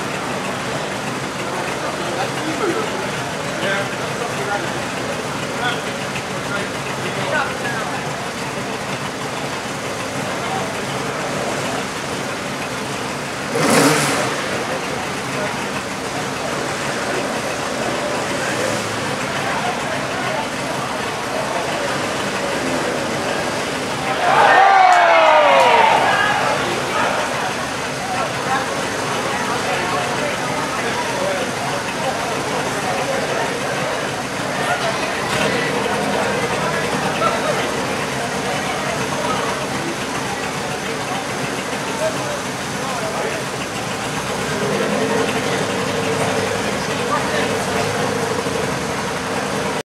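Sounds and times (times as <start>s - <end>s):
distant rally car engine revving: 0.0s - 49.8s
spectators chattering: 0.0s - 49.8s.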